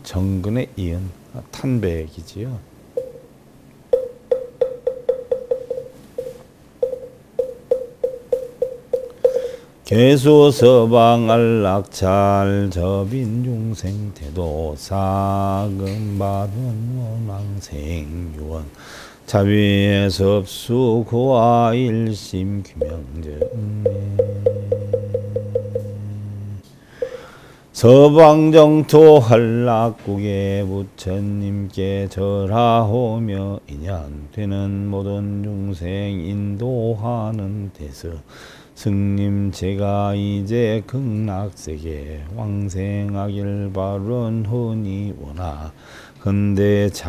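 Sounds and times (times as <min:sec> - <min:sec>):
wooden fish knocking roll: 0:04.0 - 0:09.5, 0:22.8 - 0:26.0.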